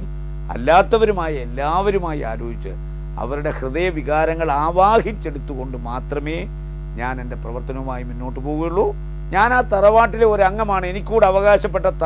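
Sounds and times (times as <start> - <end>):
electrical mains hum: 0.0 - 12.0
man talking: 0.5 - 12.0.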